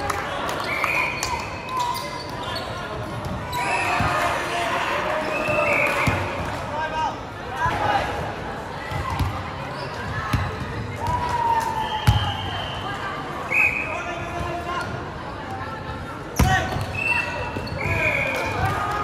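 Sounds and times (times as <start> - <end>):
chatter of people echoing: 0.0 - 19.0.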